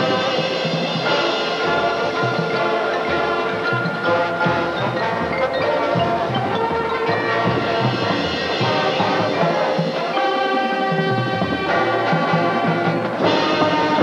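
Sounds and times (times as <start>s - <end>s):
drumline beating steady pulse: 0.0s - 14.0s
marching band brass: 0.0s - 14.0s.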